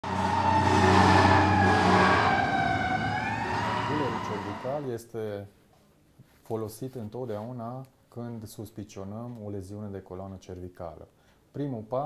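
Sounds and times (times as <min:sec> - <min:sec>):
emergency siren wailing: 0:00.0 - 0:04.9.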